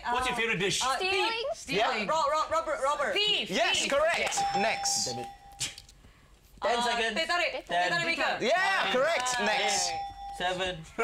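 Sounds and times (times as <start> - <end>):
electronic bell-like chime: 4.4 - 5.8, 9.6 - 10.8.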